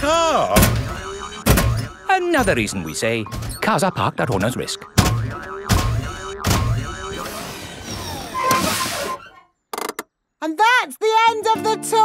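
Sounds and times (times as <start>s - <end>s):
heavy thuds: 0.6s - 3.6s, 5.0s - 7.3s
background music: 11.3s - 12.0s.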